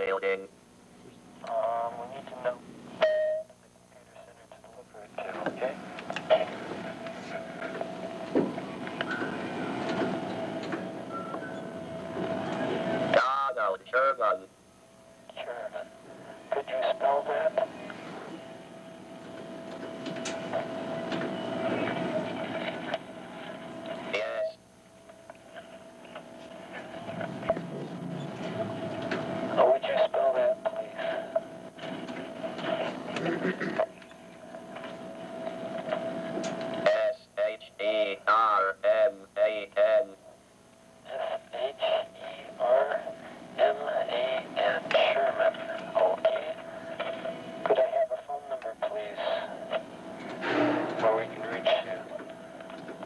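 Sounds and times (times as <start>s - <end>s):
steady hum: 0.0s - 53.0s.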